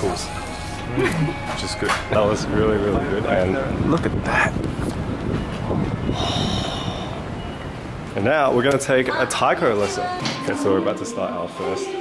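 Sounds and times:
low rumble of street traffic: 0:00.0 - 0:09.8.

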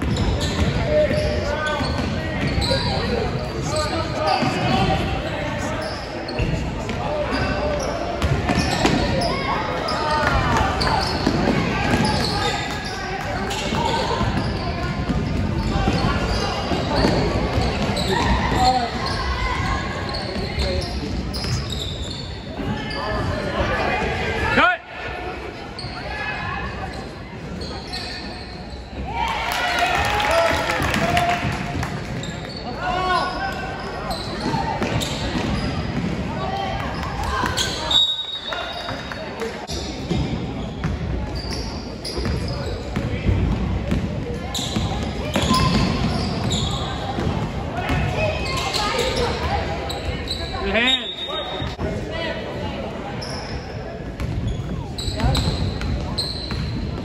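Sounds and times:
echoing crowd chatter: 0:00.0 - 0:57.0.

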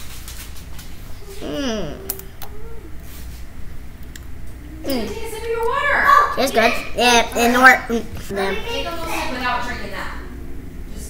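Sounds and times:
person humming mm: 0:01.2 - 0:03.0.

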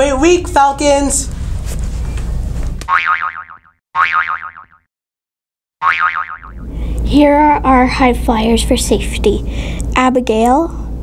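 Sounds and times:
cartoon boing spring sound: 0:02.9 - 0:04.8, 0:05.8 - 0:06.6.

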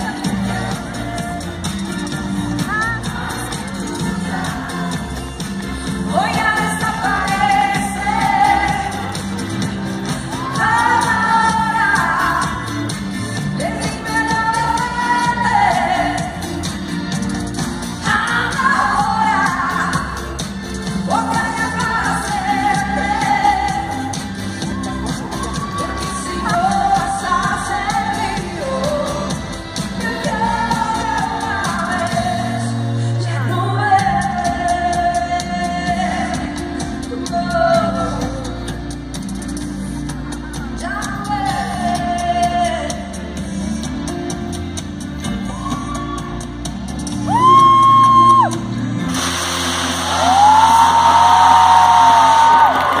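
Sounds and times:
woman singing: 0:00.0 - 0:16.7, 0:17.9 - 0:38.9, 0:40.6 - 0:43.4
pop dance beat: 0:00.0 - 0:32.9, 0:33.5 - 0:53.0
band playing live: 0:00.0 - 0:53.0
crowd cheering: 0:24.6 - 0:26.6, 0:45.5 - 0:53.0.

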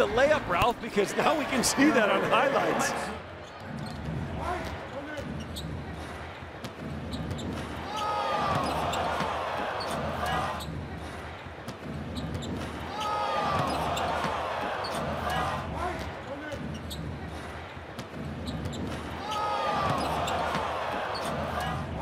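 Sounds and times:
sneakers squeaking on floor: 0:03.4 - 0:06.0, 0:06.7 - 0:10.0, 0:11.8 - 0:15.0, 0:16.0 - 0:17.2, 0:18.1 - 0:21.4.

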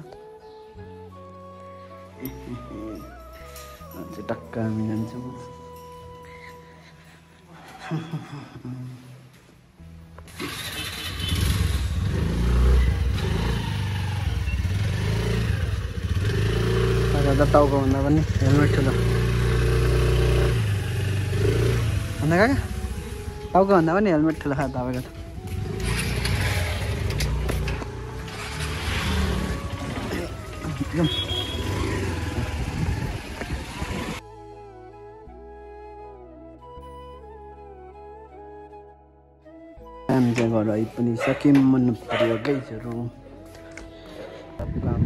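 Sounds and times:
scooter engine starting and idling: 0:10.3 - 0:23.3, 0:25.6 - 0:34.2.

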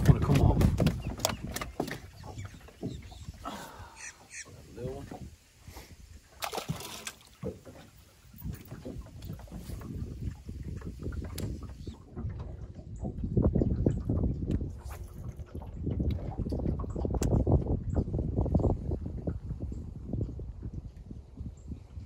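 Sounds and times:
water sloshing against boat hull: 0:00.0 - 0:19.7.

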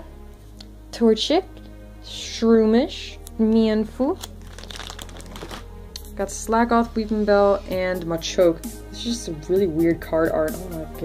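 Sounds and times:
plastic sleeves crinkling: 0:04.2 - 0:05.8.

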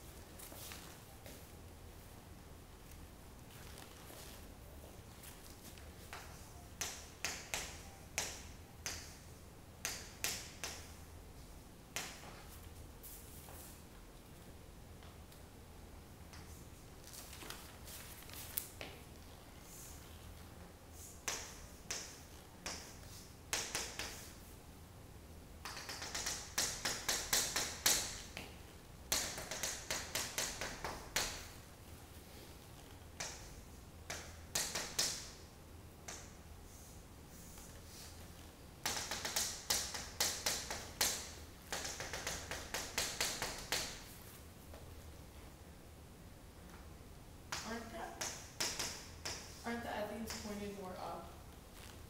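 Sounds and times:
chalk tapping on chalkboard: 0:21.2 - 0:24.3, 0:25.6 - 0:28.5, 0:29.1 - 0:31.5, 0:34.1 - 0:35.3, 0:38.8 - 0:44.0, 0:47.5 - 0:49.6.

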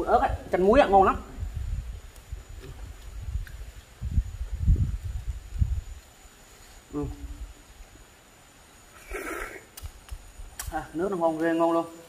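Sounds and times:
person slurping: 0:09.0 - 0:09.7
sharp click: 0:09.7 - 0:10.8.

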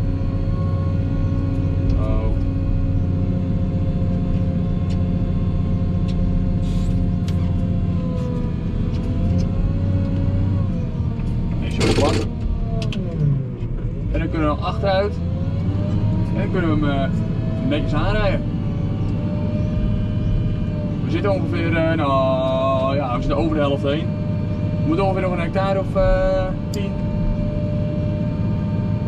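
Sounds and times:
diesel engine running under load: 0:00.0 - 0:29.0
loud burst of noise: 0:11.8 - 0:12.3.

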